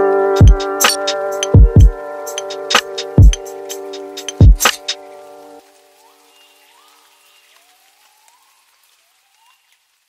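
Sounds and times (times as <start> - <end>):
faint hiss with crackles: 0.6 - 10.0.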